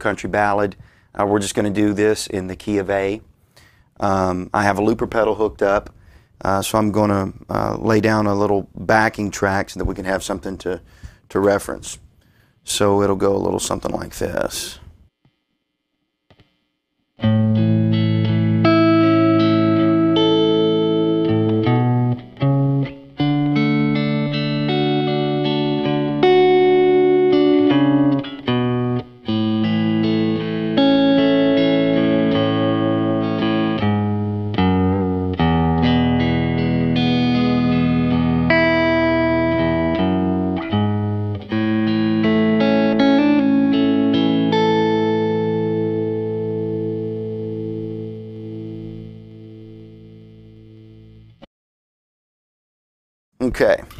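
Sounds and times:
electric guitar ringing chords: 17.2s - 51.4s.

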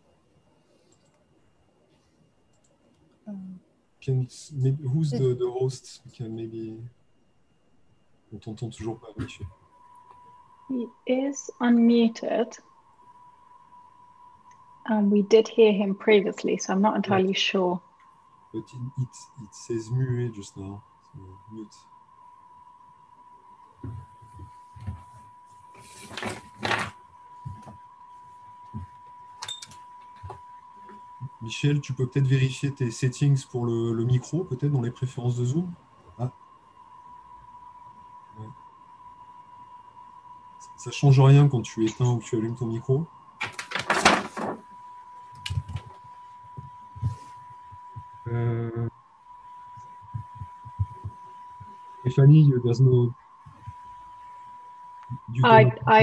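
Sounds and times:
faint steady tone: 0.0s - 56.0s
high-pitched tone: 48.0s - 48.9s, 55.1s - 56.0s
soft low thumps: 49.9s - 51.8s.

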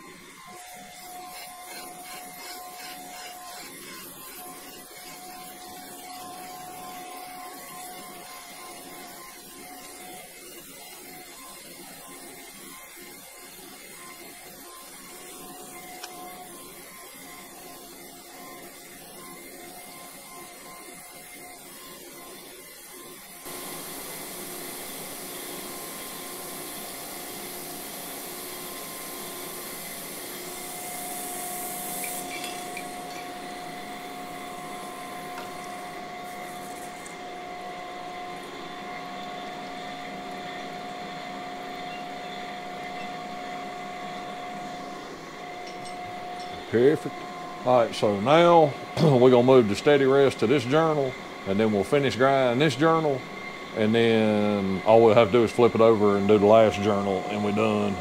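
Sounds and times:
grinder hissing and humming: 0.0s - 58.0s
steady whine: 0.0s - 58.0s.

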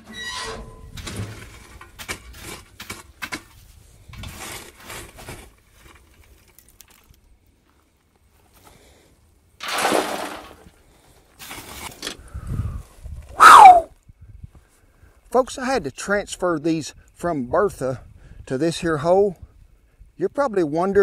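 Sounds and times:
metal shovel scraping coals: 0.0s - 7.2s, 9.6s - 12.3s
coals dumped into metal tub: 9.6s - 10.7s.

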